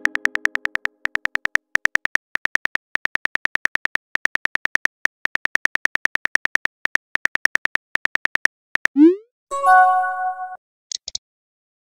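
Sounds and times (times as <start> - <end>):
phone keyboard clicks: 0.0 - 8.9.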